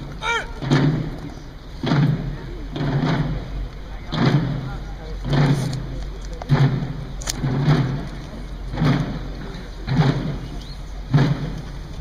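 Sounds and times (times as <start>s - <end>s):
drums playing slow march beat: 0.0s - 12.0s.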